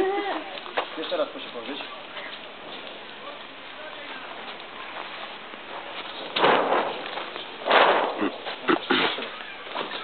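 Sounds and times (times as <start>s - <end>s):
crackling rustle of sail film: 0.0s - 10.0s.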